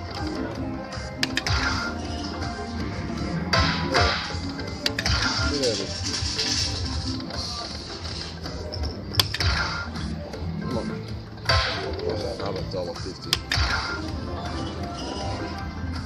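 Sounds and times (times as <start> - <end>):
electronic slot machine music: 0.0 - 16.0.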